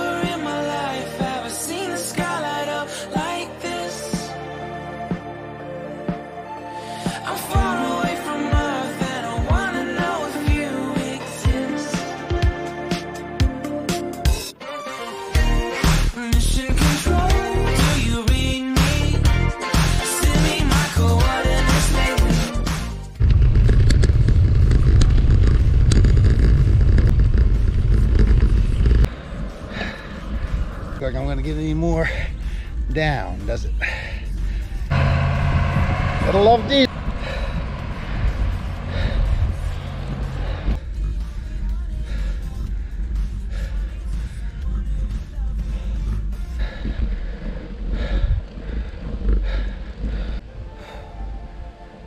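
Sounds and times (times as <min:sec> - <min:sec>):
music playing: 0:00.0 - 0:23.2, 0:34.3 - 0:46.9
riding noise: 0:23.1 - 0:50.7
wind rumble on microphone: 0:23.2 - 0:32.9, 0:34.8 - 0:41.2.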